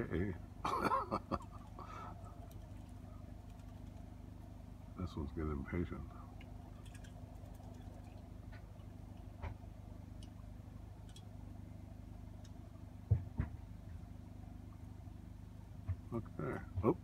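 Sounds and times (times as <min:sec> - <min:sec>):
low mechanical hum: 0:00.0 - 0:17.0
faint clicks: 0:01.6 - 0:04.1, 0:06.4 - 0:09.6, 0:11.0 - 0:11.3.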